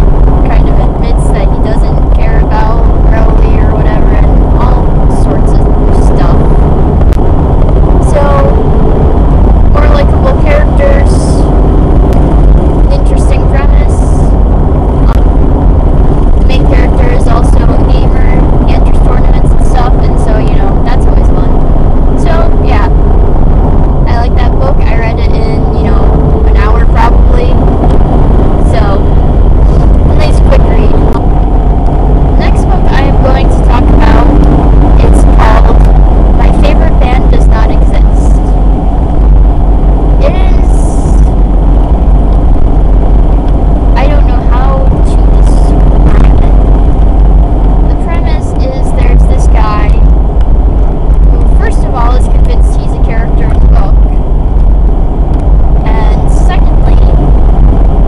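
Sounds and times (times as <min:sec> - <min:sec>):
car road and engine rumble: 0:00.0 - 0:58.0
person talking: 0:00.4 - 0:06.5, 0:08.0 - 0:08.6, 0:09.8 - 0:11.4, 0:12.9 - 0:14.2, 0:16.4 - 0:21.6, 0:22.2 - 0:22.9, 0:24.1 - 0:27.6, 0:28.6 - 0:29.1, 0:29.7 - 0:31.2, 0:32.4 - 0:34.4, 0:35.0 - 0:38.4, 0:40.2 - 0:41.3, 0:44.0 - 0:46.6, 0:47.9 - 0:50.0, 0:51.4 - 0:54.1, 0:55.8 - 0:57.2.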